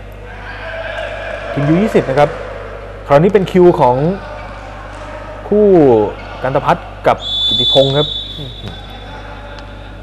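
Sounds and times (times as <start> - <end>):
arena crowd noise: 0.0 - 10.0
faint steady held tone: 7.2 - 9.2.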